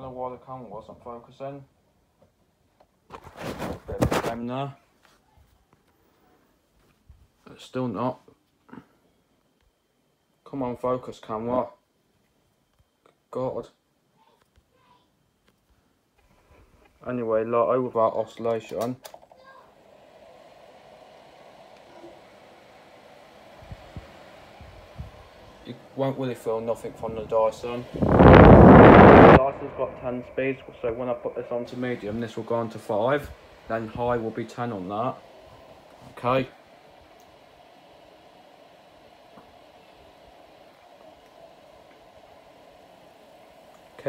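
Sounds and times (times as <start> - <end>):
fan airflow hiss: 0.0 - 12.7, 15.7 - 44.0.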